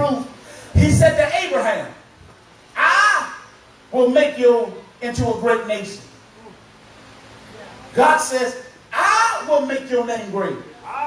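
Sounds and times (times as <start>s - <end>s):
man preaching: 0.0s - 2.0s, 2.7s - 6.1s, 8.0s - 11.0s
man calling out a high word: 2.8s - 3.5s, 8.0s - 11.0s.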